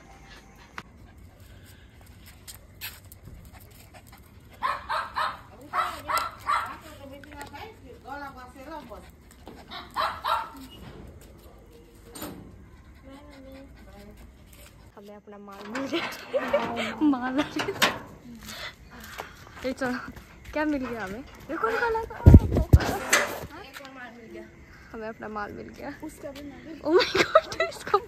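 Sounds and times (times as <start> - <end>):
puppies barking and whining: 9.2 - 10.8.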